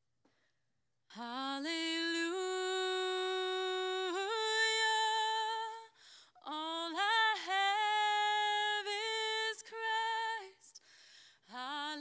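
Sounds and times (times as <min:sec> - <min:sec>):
woman singing unaccompanied: 0:01.1 - 0:10.8, 0:11.5 - 0:12.0.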